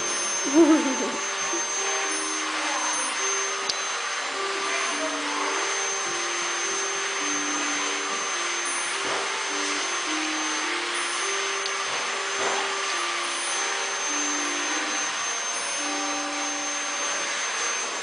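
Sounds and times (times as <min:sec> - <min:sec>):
faint simple tune: 0:00.0 - 0:18.0
loud rushing motor whine: 0:00.0 - 0:18.0.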